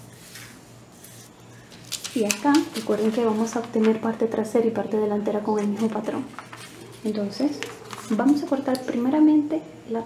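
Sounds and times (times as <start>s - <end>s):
paper rustling: 0.2s - 4.4s, 5.5s - 8.9s.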